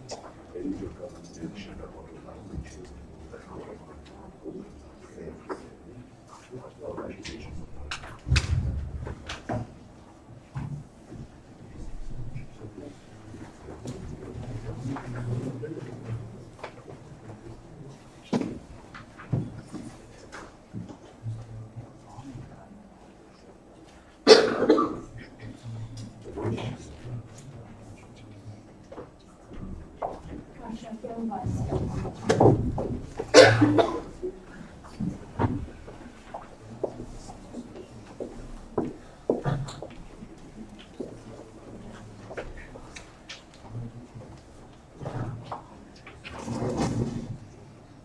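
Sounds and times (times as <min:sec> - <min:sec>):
people moving about: 0:00.0 - 0:48.0
person coughing: 0:24.2 - 0:25.6, 0:33.3 - 0:34.1
chairs scraping on floor: 0:46.2 - 0:47.4.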